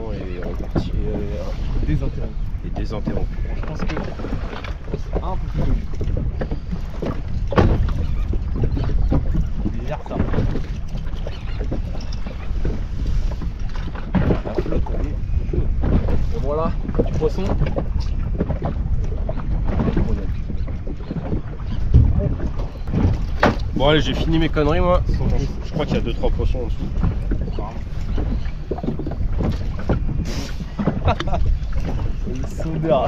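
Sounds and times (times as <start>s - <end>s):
water lapping against boat: 0.0s - 33.0s
wind buffeting microphone: 0.0s - 33.0s
knocks against boat: 2.7s - 33.0s.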